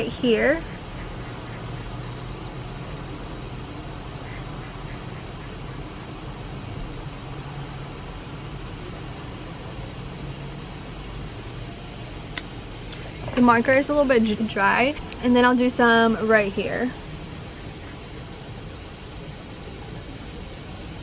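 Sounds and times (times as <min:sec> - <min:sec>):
faint low hum: 0:00.0 - 0:21.0
outdoor background noise: 0:00.0 - 0:21.0.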